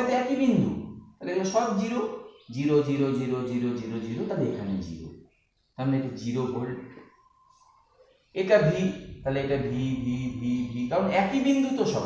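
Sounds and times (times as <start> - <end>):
man holding a long syllable: 8.5 - 12.0.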